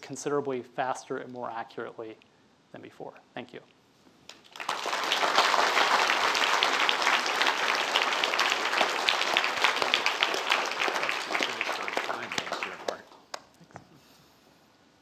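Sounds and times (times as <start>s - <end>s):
audience applauding: 4.3s - 13.5s.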